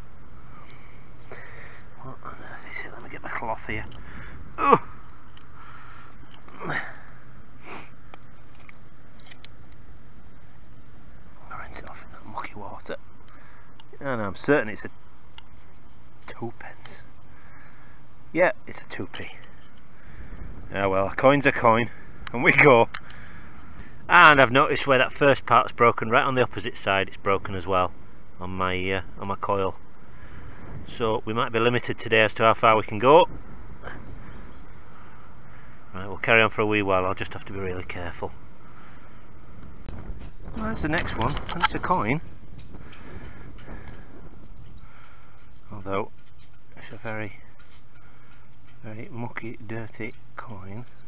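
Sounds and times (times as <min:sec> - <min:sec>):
background hiss: 0:00.0 - 0:29.2.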